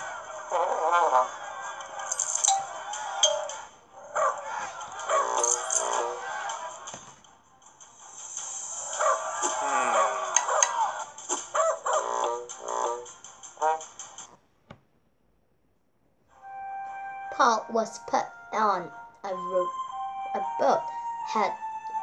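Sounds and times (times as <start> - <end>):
light background music: 0.0 - 14.3, 16.3 - 22.0.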